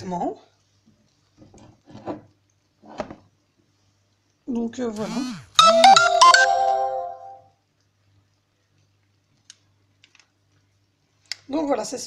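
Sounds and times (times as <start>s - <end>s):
electronic chime tune: 5.6s - 7.4s.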